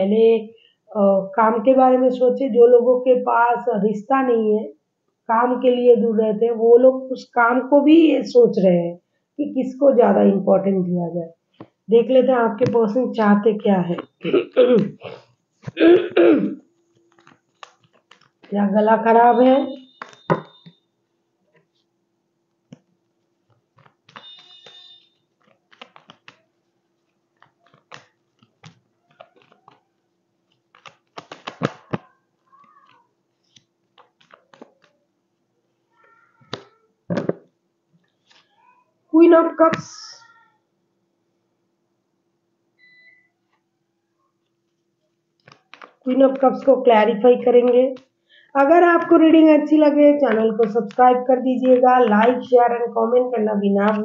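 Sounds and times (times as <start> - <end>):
woman clearing her throat: 14.1 - 16.6
short electronic beep: 19.4 - 20.8, 24.2 - 25.2, 42.8 - 43.3.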